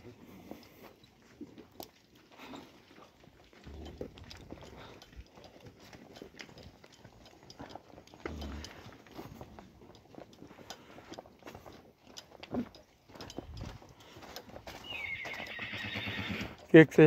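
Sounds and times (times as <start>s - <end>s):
horse whinnying: 14.8s - 16.6s.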